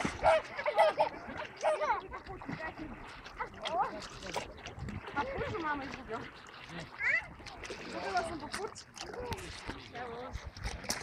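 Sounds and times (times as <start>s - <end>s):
dog splashing in water: 0.0s - 11.0s.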